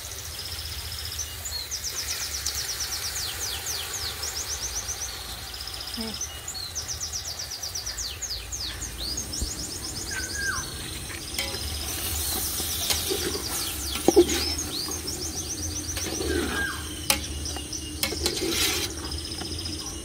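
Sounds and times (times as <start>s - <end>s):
songbirds chirping: 0.0s - 20.0s.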